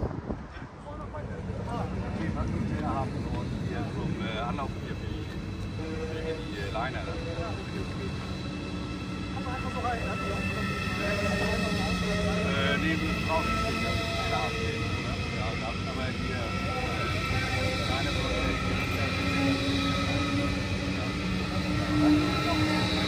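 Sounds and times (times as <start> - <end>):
train wheels rumbling on rails: 0.0 - 23.0.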